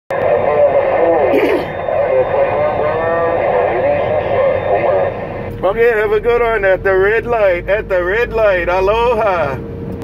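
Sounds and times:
voice over radio speaker: 0.1 - 9.6
faint steady high tone: 0.3 - 6.6.

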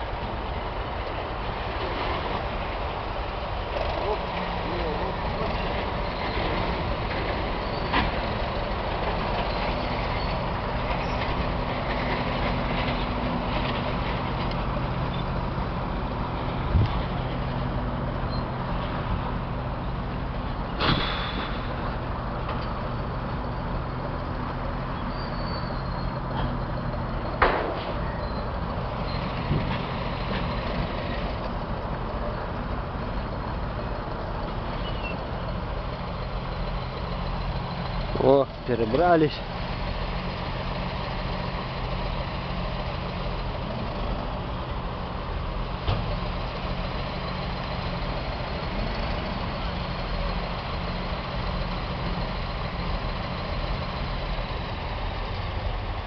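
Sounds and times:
heavy machinery engines droning: 0.0 - 56.0.

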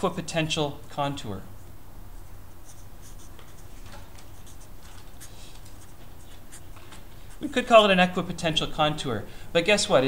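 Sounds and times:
steady low hum: 0.0 - 10.0
marker scratching on paper: 2.2 - 7.6.

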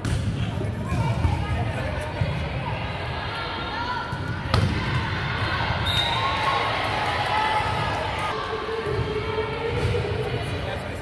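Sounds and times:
voices of players and spectators: 0.0 - 11.0
volleyball struck hard: 4.5 - 5.0.

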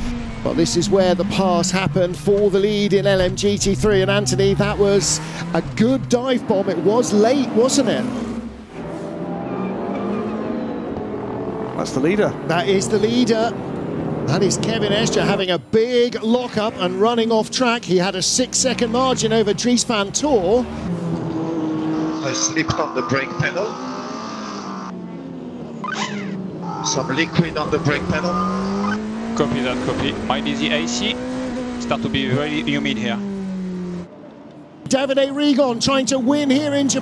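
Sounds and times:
race car engine running: 0.0 - 8.8, 25.0 - 34.1
race car engines: 0.0 - 37.0.

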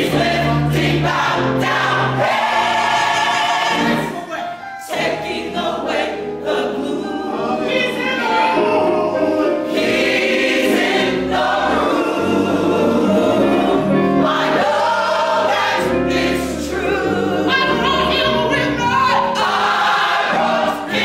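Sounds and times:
gospel choir singing: 0.0 - 21.0.

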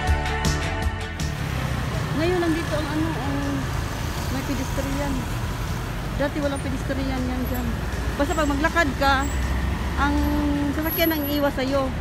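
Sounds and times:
background music: 0.0 - 5.3
traffic rumble: 1.2 - 12.0.

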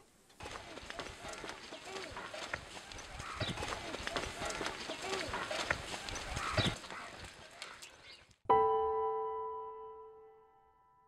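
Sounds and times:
loud calls: 0.4 - 8.2
children's voices: 0.4 - 8.4.

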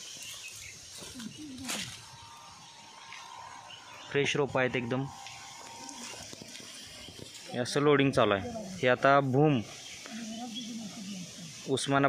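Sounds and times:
distant pitched call: 1.2 - 11.8.

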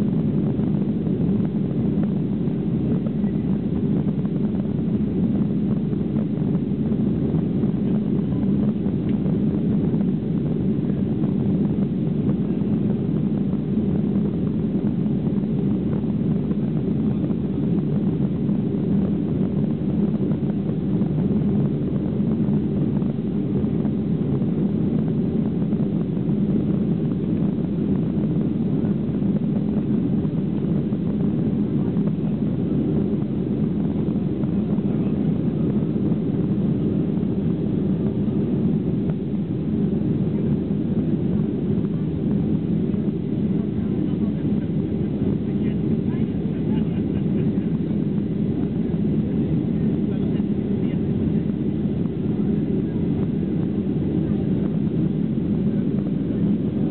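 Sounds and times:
jet engines heard in cabin: 0.0 - 56.9.

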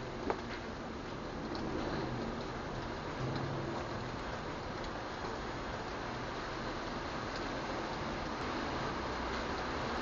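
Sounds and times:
steady rain hiss: 0.0 - 10.0
faint drip ticks: 0.2 - 6.0, 7.2 - 8.6.

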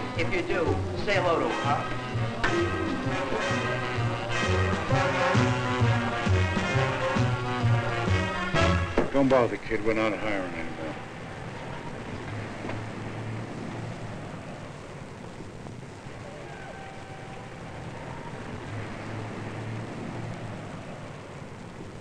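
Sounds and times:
industrial rumble: 0.0 - 16.3.

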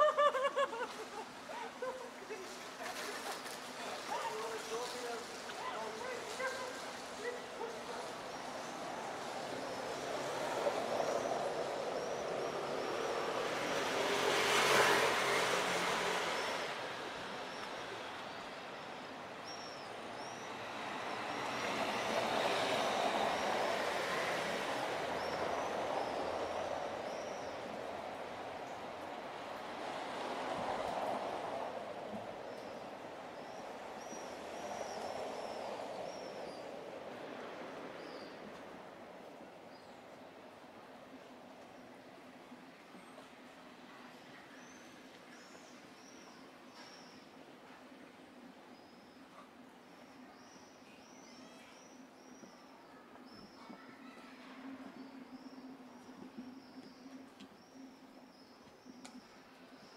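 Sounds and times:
traffic rumble: 0.0 - 44.6.

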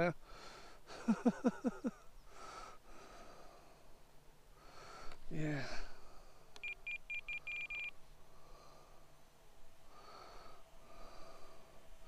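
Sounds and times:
transmitter beeping: 6.6 - 7.9.

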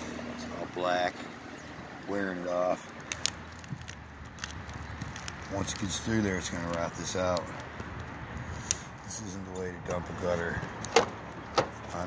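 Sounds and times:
sharp clicks and light crackles: 2.8 - 8.8.

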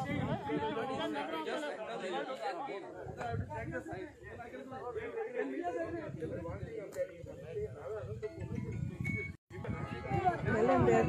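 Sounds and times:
crowd chatter: 0.0 - 11.0.

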